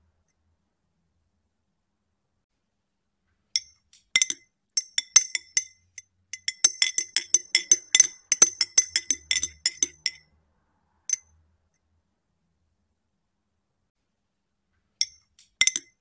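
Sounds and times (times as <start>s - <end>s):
teaspoon clinking in glass: 3.6s - 10.2s, 15.0s - 15.9s.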